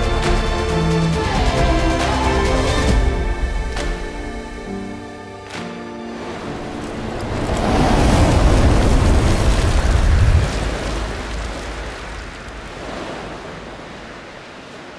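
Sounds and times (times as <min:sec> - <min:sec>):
deep rushing rumble: 0:06.5 - 0:13.8.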